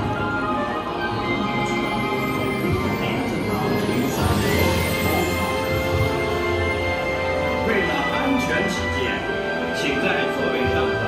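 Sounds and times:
music with held tones over speakers: 0.0s - 11.0s.

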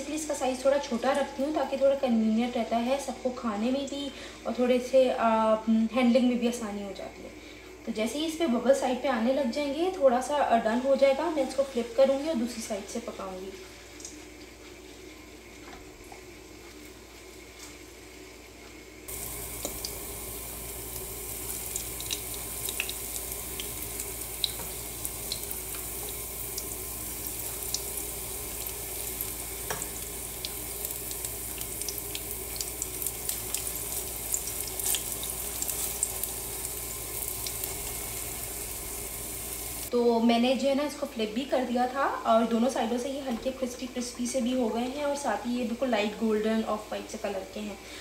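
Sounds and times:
batter sizzling in oil: 10.4s - 40.0s.

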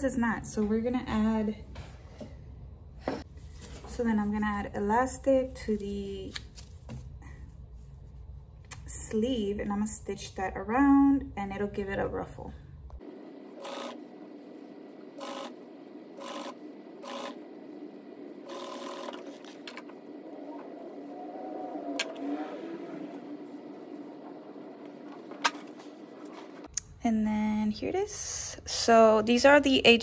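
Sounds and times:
sewing machine stitching: 13.5s - 14.0s, 15.1s - 17.4s, 18.4s - 20.9s.

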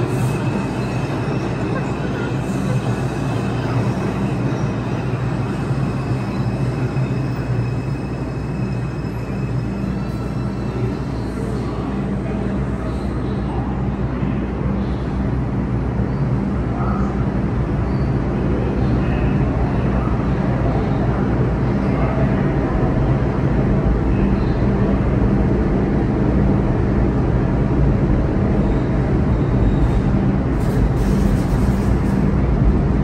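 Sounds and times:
subway train humming: 0.0s - 33.0s.

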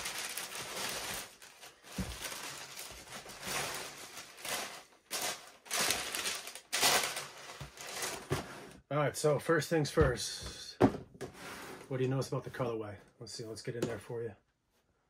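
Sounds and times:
tissue paper rustling: 0.0s - 8.6s.

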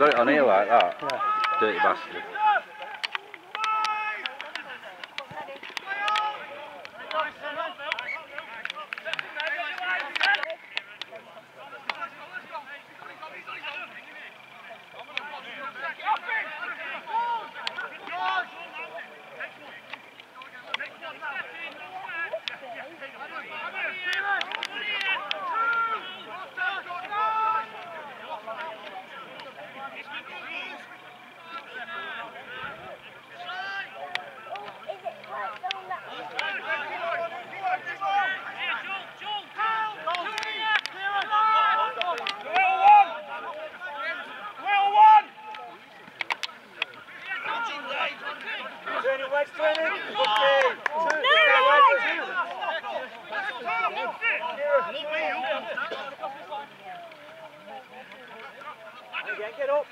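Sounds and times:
men shouting at a distance: 0.0s - 5.0s, 5.8s - 19.8s, 20.5s - 45.9s, 47.0s - 59.9s.

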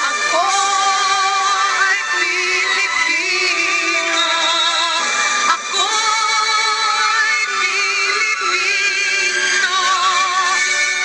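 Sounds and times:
backing instruments: 0.0s - 11.0s
processed voice singing: 0.0s - 11.0s.

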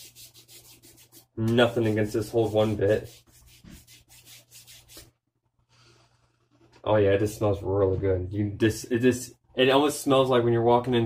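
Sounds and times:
hands rubbing together: 0.0s - 5.2s.

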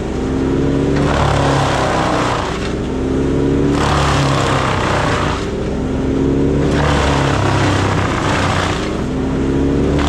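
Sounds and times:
branches shredding in chipper: 0.0s - 10.0s
wood chipper engine drone: 0.0s - 10.0s.

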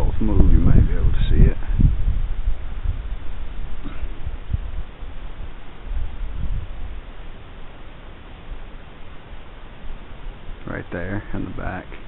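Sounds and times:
faint steady hiss: 0.0s - 12.0s
wind rumble on microphone: 0.0s - 12.0s.

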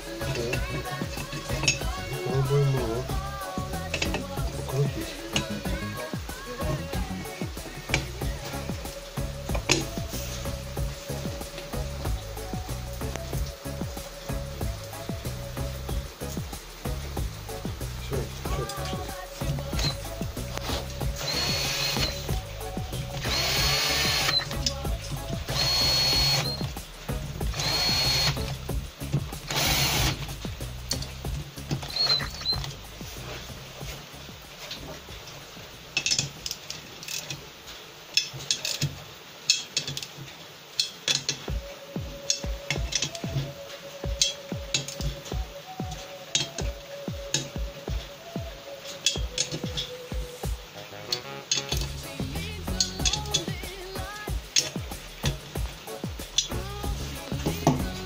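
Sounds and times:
cordless drill whining: 21.2s - 22.4s, 23.1s - 24.6s, 25.5s - 26.7s, 27.5s - 28.5s, 29.5s - 30.2s
hand ratchet clicking: 23.0s - 24.8s, 25.4s - 26.8s, 27.5s - 31.1s, 36.0s - 37.4s, 38.2s - 40.2s, 40.8s - 41.5s, 51.5s - 55.4s.

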